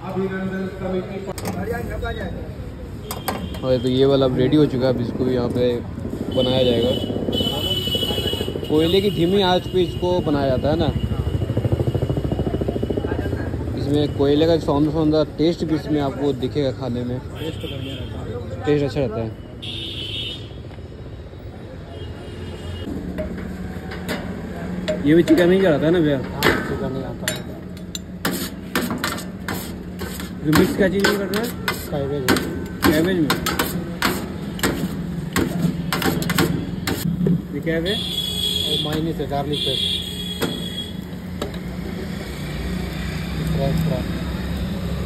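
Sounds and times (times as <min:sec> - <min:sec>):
street traffic rumble: 0:00.0 - 0:45.0.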